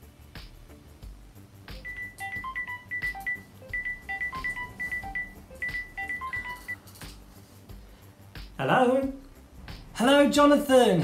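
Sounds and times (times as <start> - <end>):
phone ringtone beeping melody: 1.8 - 6.8.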